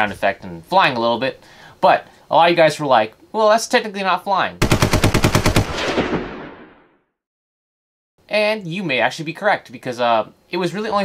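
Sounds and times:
machine-gun fire: 4.6 - 6.9.

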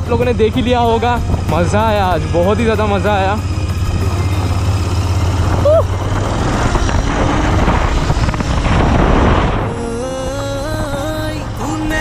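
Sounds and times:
motorcycle engine running: 0.0 - 12.0
wind rush on microphone: 3.2 - 12.0.

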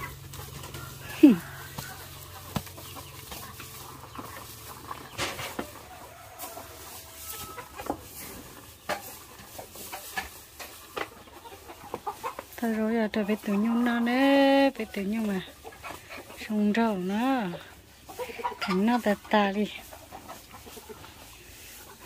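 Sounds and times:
chickens clucking: 0.0 - 22.0
cow chewing and crunching: 0.0 - 22.0
rustling straw: 0.0 - 22.0.

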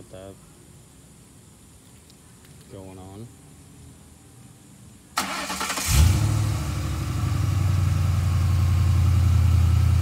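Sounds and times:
car engine starting and idling: 5.2 - 10.0.

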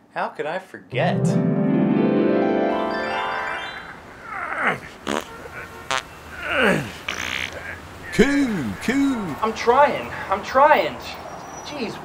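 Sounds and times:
rising keyboard glissando: 0.9 - 4.6.

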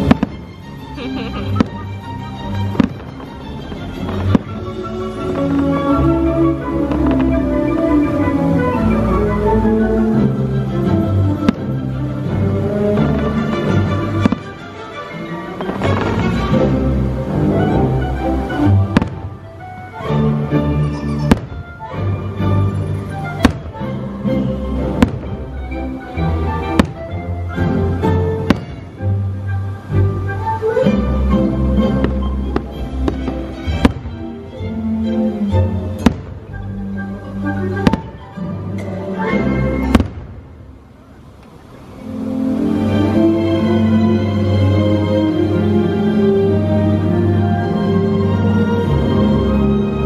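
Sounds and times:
soundtrack music: 0.0 - 40.3, 41.8 - 50.0.

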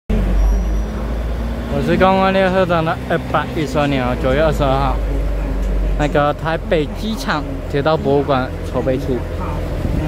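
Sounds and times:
railcar diesel engine rumbling: 0.1 - 10.0.

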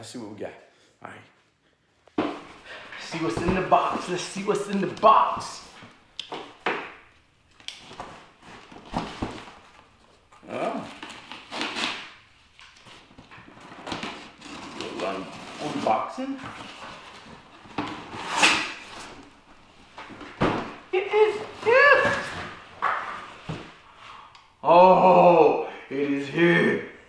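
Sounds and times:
cardboard flaps rustling and scraping: 2.2 - 5.9
packing tape tearing: 10.4 - 13.0, 13.7 - 16.0, 18.0 - 19.1.

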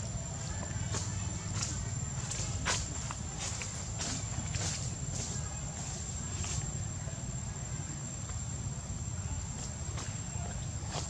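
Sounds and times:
soft scuffs and clicks: 0.5 - 6.7.

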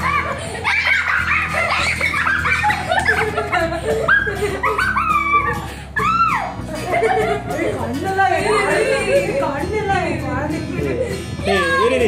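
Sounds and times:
girl squealing laughter: 0.0 - 7.4
background music: 0.0 - 12.0.

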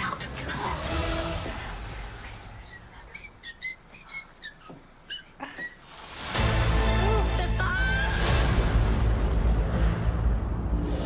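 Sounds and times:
high bird-like chirps: 2.6 - 5.8
low rumble: 7.1 - 11.0.

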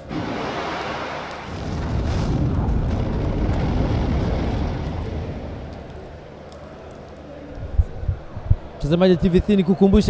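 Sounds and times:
deep rumbling: 0.0 - 7.0.

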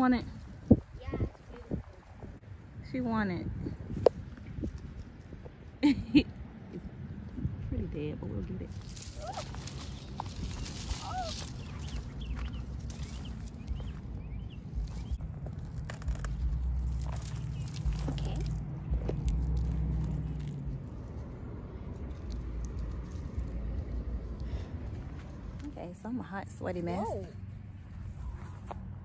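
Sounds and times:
wind rumble on microphone: 0.0 - 26.4.

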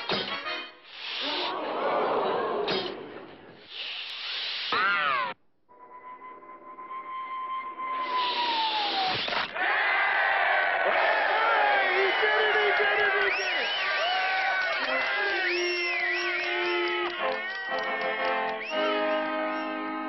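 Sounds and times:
crowd cheering: 1.2 - 3.3, 8.5 - 20.0
cartoon arrow whistling: 7.9 - 9.6.

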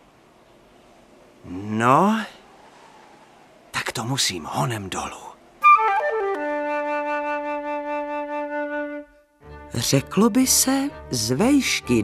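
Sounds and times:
flute holding long low note: 5.6 - 9.4.

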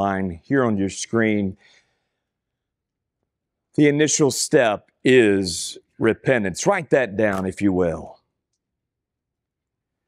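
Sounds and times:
man's voice: 3.8 - 8.2.

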